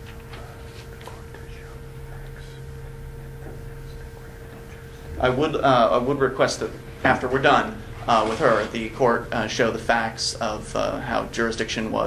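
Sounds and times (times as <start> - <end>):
low room hum: 0.0 - 12.0
men whispering: 0.0 - 12.0.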